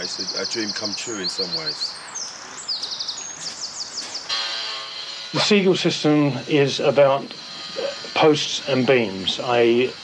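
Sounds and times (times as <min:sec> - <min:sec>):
small bird chirping: 0:00.0 - 0:04.4
outdoor background noise: 0:00.0 - 0:10.0.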